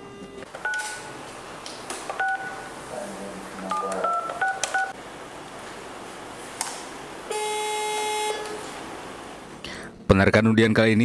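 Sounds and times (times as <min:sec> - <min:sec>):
two-tone keypad beeps: 0:02.2 - 0:02.7, 0:03.7 - 0:05.0.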